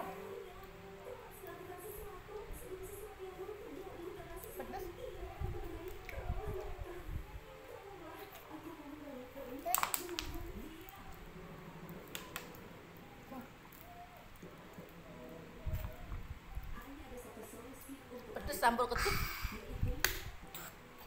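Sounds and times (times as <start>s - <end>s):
faint indistinct talk: 0.0s - 21.0s.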